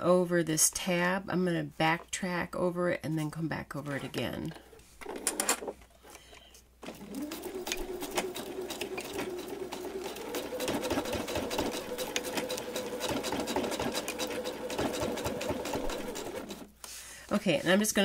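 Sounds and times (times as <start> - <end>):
electric sewing machine stitching: 6.8 - 16.8.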